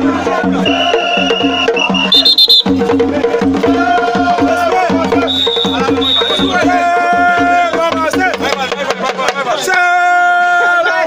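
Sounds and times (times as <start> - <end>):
fast repeating drumming: 0.5 - 9.7
shrill whistle blast: 0.6 - 2.8, 5.3 - 6.7.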